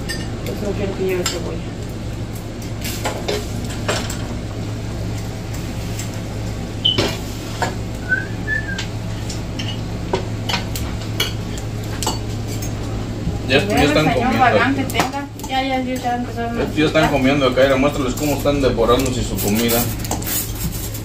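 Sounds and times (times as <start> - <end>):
utensils clinking on pan and plate: 0.0 - 1.6, 2.6 - 4.4, 9.1 - 12.9, 13.7 - 21.0
steady low hum: 0.0 - 21.0.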